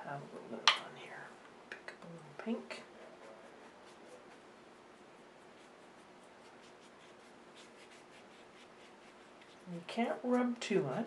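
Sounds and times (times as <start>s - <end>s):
paintbrush brushing on paper: 2.6s - 11.0s.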